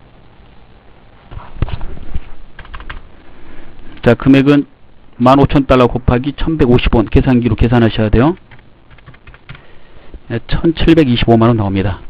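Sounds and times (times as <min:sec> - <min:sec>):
computer keyboard typing: 0:02.6 - 0:03.0, 0:08.2 - 0:09.7.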